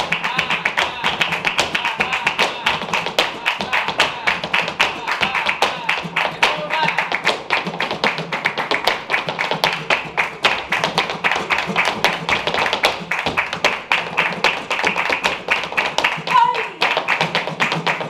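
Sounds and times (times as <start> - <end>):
hand clapping: 0.0 - 18.0
heeled shoes striking stage floor: 0.0 - 18.0.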